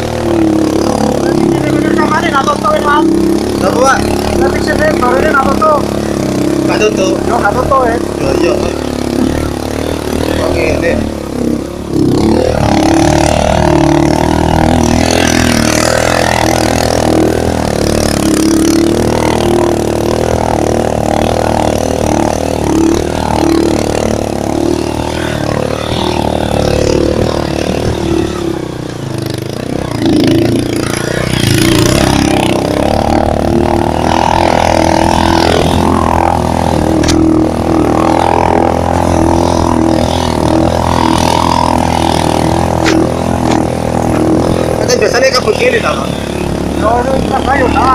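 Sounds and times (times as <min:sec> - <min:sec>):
motorcycle engine revving: 0:00.0 - 0:47.9.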